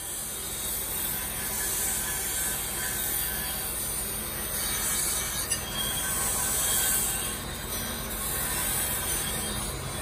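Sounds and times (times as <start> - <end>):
knife grinding on grinding wheel: 0.0 - 10.0.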